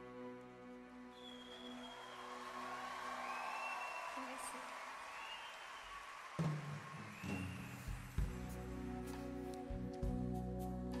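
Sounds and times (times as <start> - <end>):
audience applauding and cheering: 0.0 - 9.7.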